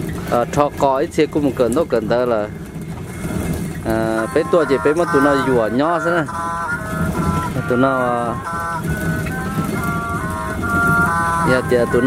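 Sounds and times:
low steady rumble: 0.0s - 12.0s
person singing: 4.2s - 12.0s.

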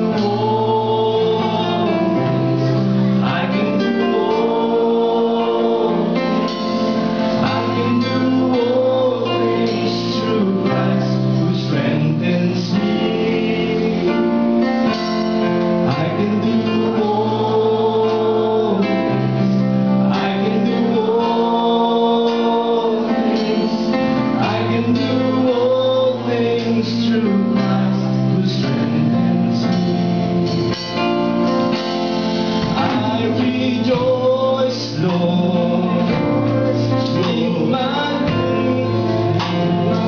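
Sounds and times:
man singing into a microphone: 0.0s - 31.2s, 32.6s - 40.0s
electric guitars: 0.0s - 40.0s
keyboard: 0.0s - 40.0s.

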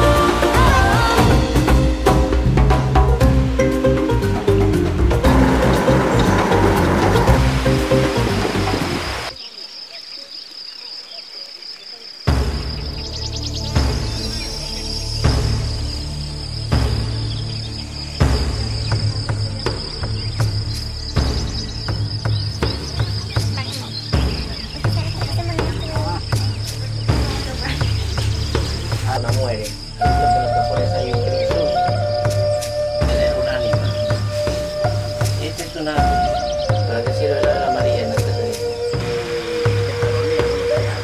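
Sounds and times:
background music: 0.0s - 9.4s, 12.2s - 41.0s
crickets trilling: 0.0s - 41.0s.

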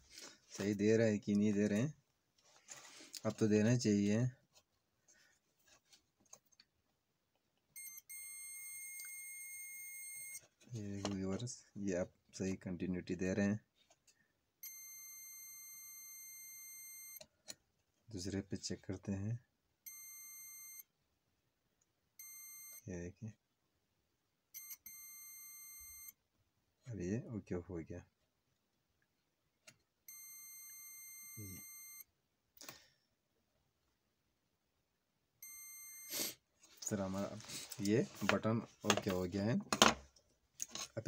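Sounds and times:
multimeter continuity beep: 7.8s - 10.4s, 14.6s - 17.2s, 19.9s - 20.9s, 22.2s - 22.9s, 24.6s - 26.2s, 30.1s - 32.1s, 35.4s - 36.4s.

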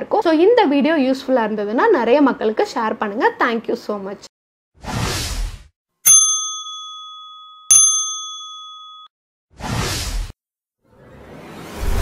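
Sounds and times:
bell-like ding: 6.1s - 9.1s.

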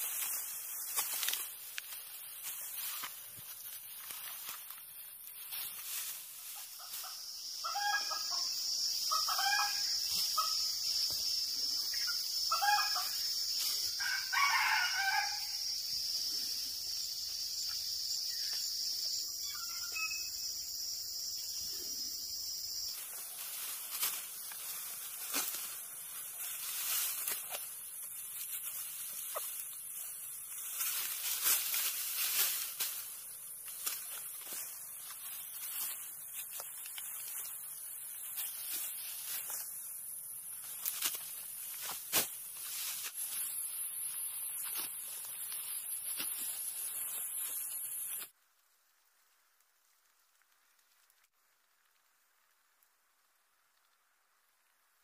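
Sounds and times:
rice stalks rustling being cut: 0.0s - 7.2s, 23.0s - 39.8s, 40.5s - 48.3s
high insect buzz: 0.0s - 48.3s
rooster crowing: 14.0s - 15.6s.

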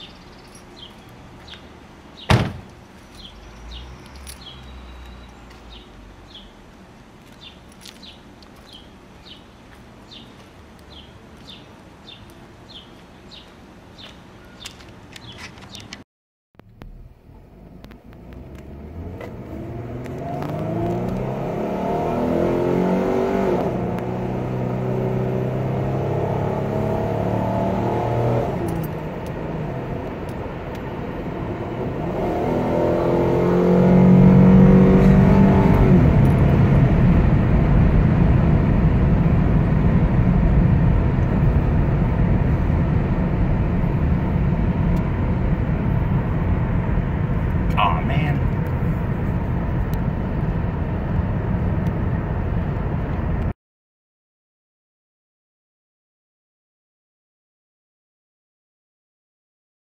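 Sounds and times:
car engine accelerating: 16.6s - 53.5s.

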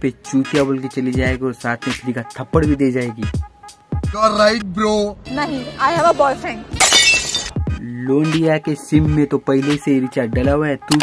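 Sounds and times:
glass shattering: 6.8s - 7.6s.

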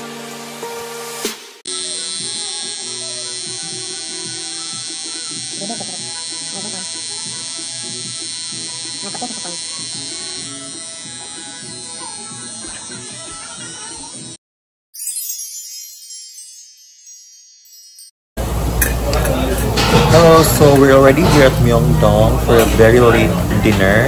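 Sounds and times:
tattoo machine buzzing: 1.7s - 14.4s.

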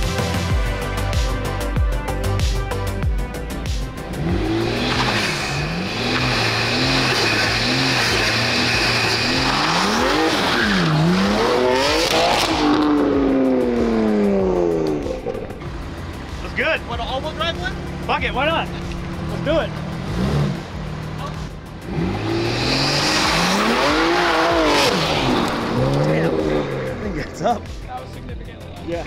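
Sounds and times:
car engine idling: 0.0s - 29.0s
car engines revving: 0.0s - 29.0s
car accelerating hard: 4.1s - 15.8s, 18.6s - 27.6s
voices: 24.9s - 29.0s.

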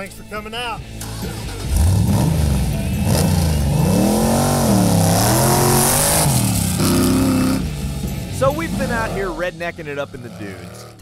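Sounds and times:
buggy engine revving: 0.8s - 11.0s.

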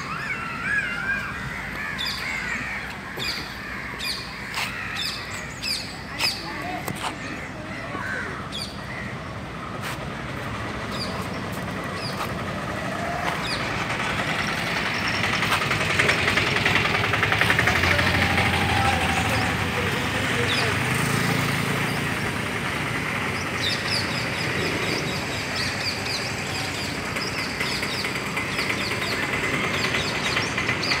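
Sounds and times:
birds chirping: 0.0s - 31.0s
traffic noise: 0.0s - 31.0s
vehicle passing: 1.3s - 31.0s.

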